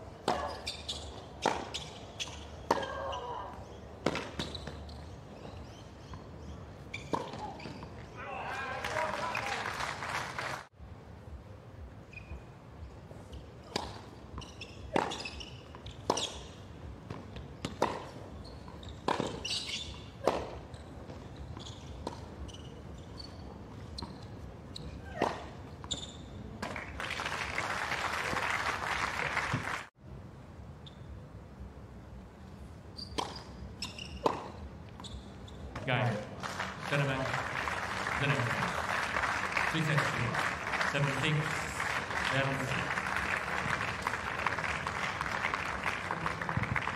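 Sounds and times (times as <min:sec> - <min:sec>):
tennis racquets hitting ball: 0:04.0 - 0:04.9, 0:06.0 - 0:07.9, 0:13.6 - 0:22.3, 0:33.2 - 0:33.6, 0:34.2 - 0:34.6
crowd applause: 0:08.7 - 0:10.7, 0:26.8 - 0:29.9, 0:36.4 - 0:46.9.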